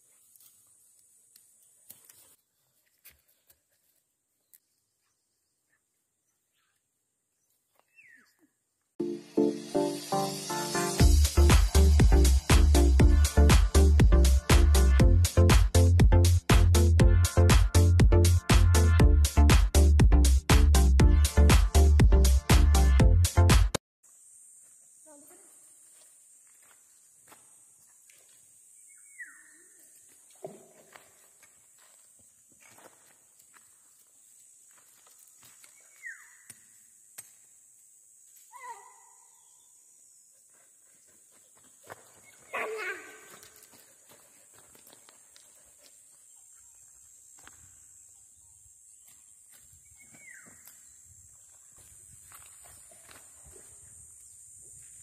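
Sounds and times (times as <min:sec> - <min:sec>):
steady high hiss: 0:09.0 - 0:14.0
footsteps on stones: 0:29.9 - 0:37.4, 0:41.3 - 0:46.2.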